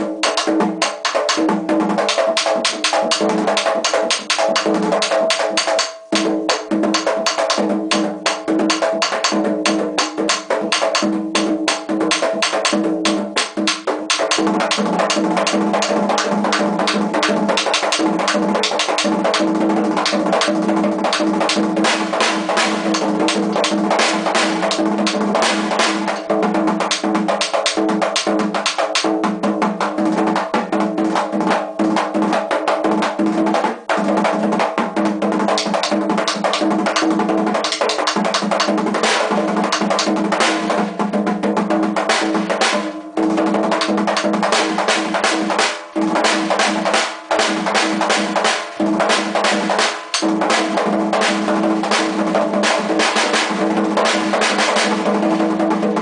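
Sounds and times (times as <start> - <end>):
two-headed drum beaten rapidly: 0.0 - 56.0.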